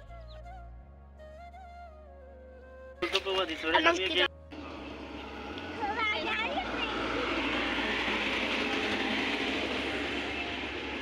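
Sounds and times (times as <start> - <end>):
train wheels running on rails: 4.6 - 11.0.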